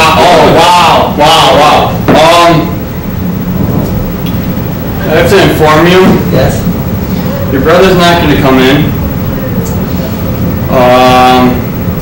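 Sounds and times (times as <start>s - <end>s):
faint hum: 0.0s - 12.0s
low rumbling background noise: 0.0s - 12.0s.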